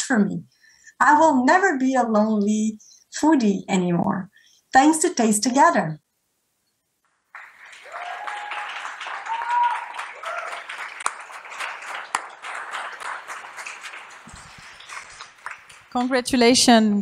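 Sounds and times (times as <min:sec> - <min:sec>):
audience applauding: 0:07.2 - 0:16.2.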